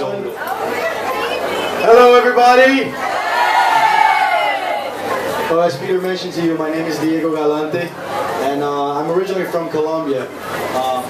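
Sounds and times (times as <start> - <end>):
audience calling and cheering: 0.0 - 7.1.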